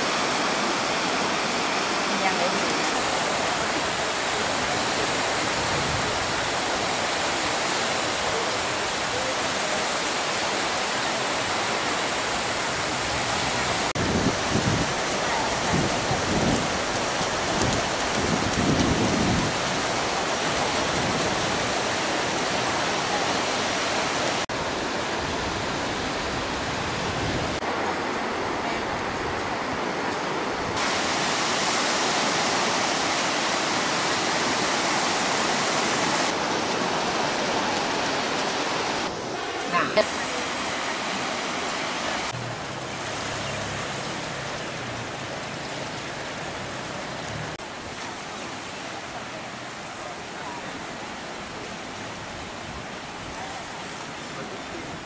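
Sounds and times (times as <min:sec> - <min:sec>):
waves breaking on beach: 0:00.0 - 0:55.0.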